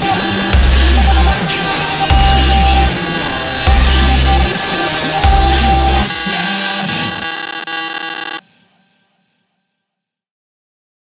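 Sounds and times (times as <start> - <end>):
buzzy synth chord: 0.0 - 8.3.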